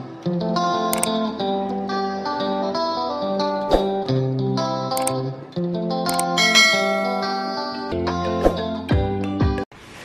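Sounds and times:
guitar music: 0.1s - 8.2s
click: 0.9s - 1.2s, 4.9s - 5.2s, 6.1s - 6.4s
bell chime sound effect: 6.4s - 7.8s.

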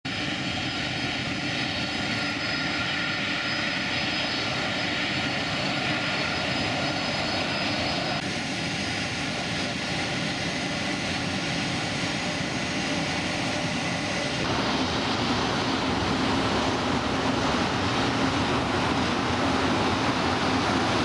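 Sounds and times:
jet engines roaring with whine: 0.1s - 21.0s.

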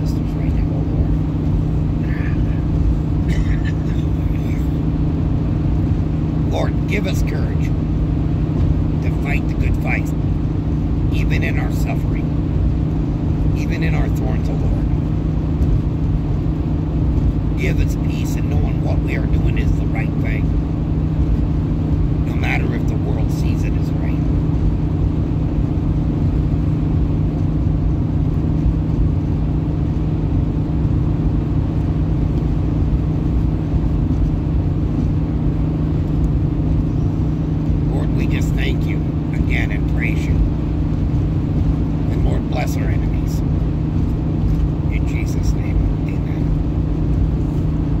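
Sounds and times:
car cabin road rumble: 0.0s - 48.0s.

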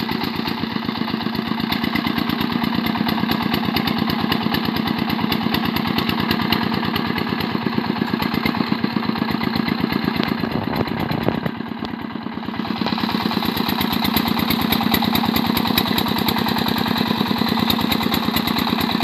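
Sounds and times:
diesel engine chugging: 0.0s - 19.0s.

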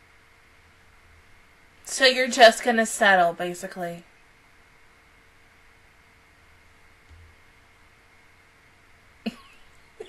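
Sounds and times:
faint room hiss: 0.0s - 10.0s
woman coughing: 9.3s - 9.6s.

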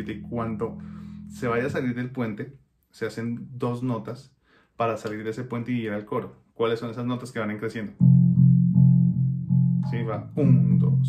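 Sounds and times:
low plucked bass guitar notes: 0.0s - 2.4s, 7.9s - 11.0s
man saying a word: 9.9s - 11.0s.

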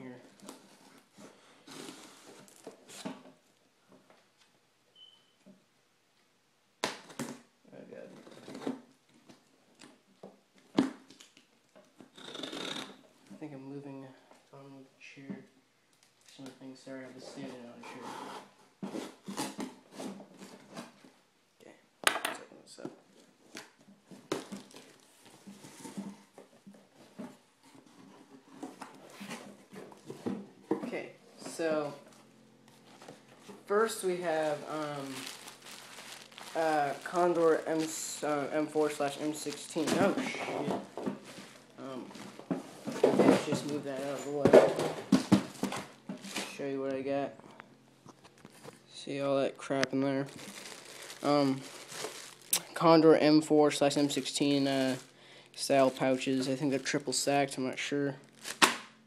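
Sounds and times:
plastic wrapping crinkling and ripping: 23.4s - 26.1s, 31.6s - 46.6s, 49.6s - 57.3s, 58.2s - 59.0s.

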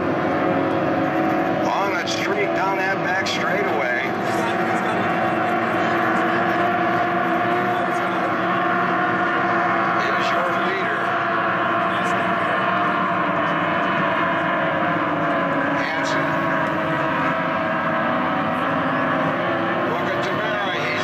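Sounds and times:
race boat engines droning: 0.0s - 21.0s.

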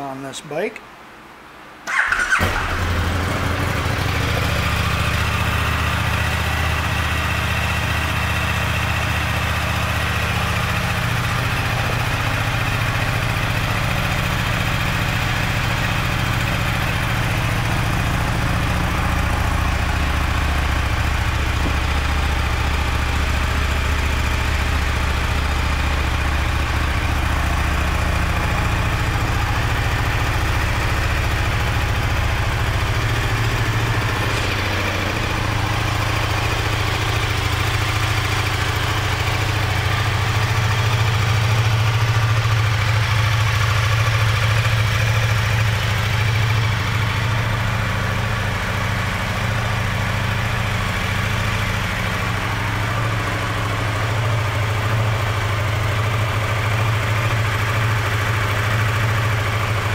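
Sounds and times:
motorcycle engine starting and idling: 1.8s - 59.9s.

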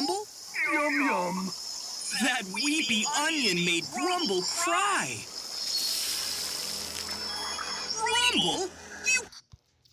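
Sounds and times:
soft cartoon background music: 0.0s - 9.9s.

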